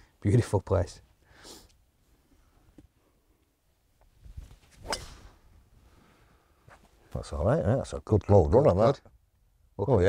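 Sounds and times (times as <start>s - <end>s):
golf club striking ball: 4.8s - 5.5s.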